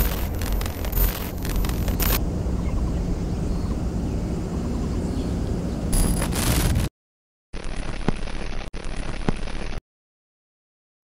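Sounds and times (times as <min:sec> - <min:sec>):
low outdoor rumble: 0:00.0 - 0:06.9.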